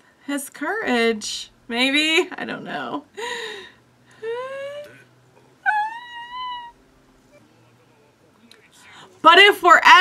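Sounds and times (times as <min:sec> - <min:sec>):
person making high-pitched cries: 0:04.2 - 0:05.0, 0:05.7 - 0:06.8.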